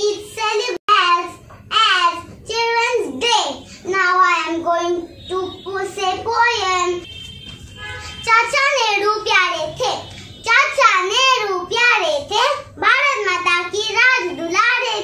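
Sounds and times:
girl singing: 0:08.2 - 0:15.0.

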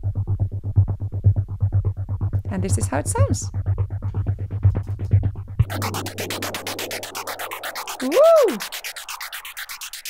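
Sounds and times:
pulsing bass groove: 0:00.0 - 0:09.9
filtered white-noise lift: 0:05.6 - 0:09.3.

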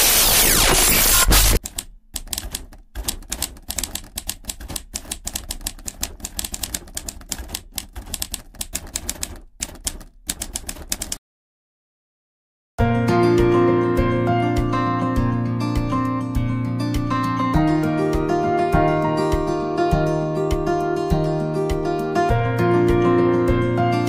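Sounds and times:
glitch static noise: 0:00.0 - 0:01.6
typewriter key clicks: 0:01.6 - 0:11.2.

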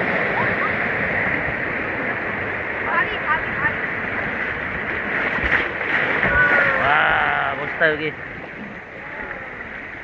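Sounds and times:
river water rushing: 0:00.0 - 0:10.0.

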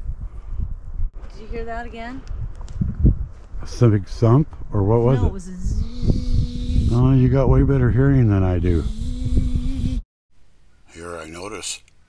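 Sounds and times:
wind buffeting microphone: 0:00.0 - 0:10.0
steady low hum: 0:05.1 - 0:10.0.

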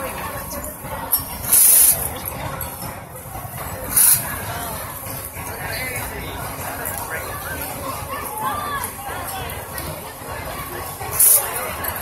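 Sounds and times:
murmur of voices: 0:00.0 - 0:12.0.

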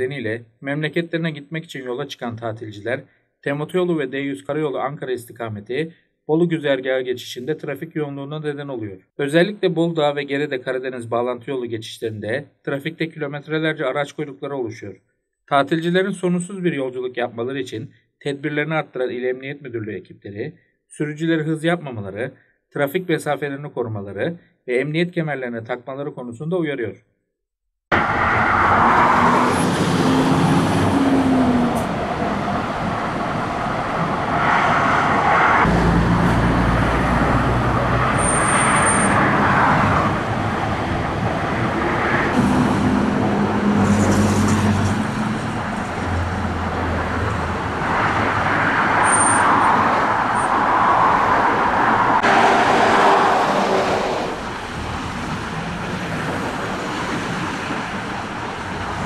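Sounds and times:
highway traffic passing: 0:27.9 - 0:59.0.

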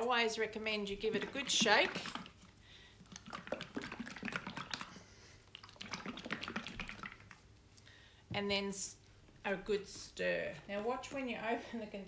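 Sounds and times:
paint sloshing in shaken jar: 0:01.0 - 0:07.5.

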